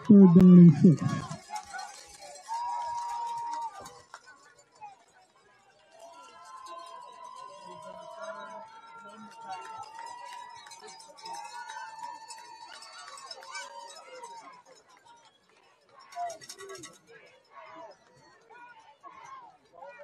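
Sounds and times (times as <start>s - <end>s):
faint stadium crowd: 0.0s - 20.0s
loud shout: 2.4s - 3.9s, 11.5s - 14.5s.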